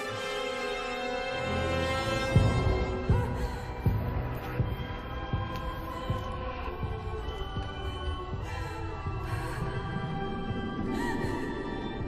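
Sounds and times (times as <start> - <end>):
heartbeat-like low thuds: 2.2 - 12.0.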